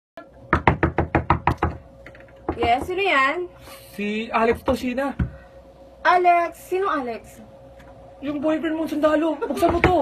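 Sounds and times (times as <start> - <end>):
knocking on a door: 0.5 - 3.0, 9.6 - 10.0.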